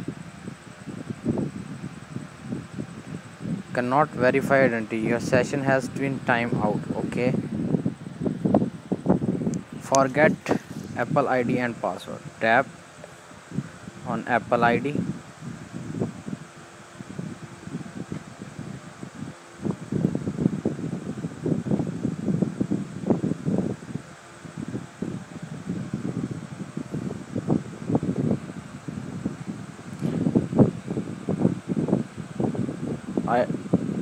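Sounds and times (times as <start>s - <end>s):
background hiss: 0.0s - 34.0s.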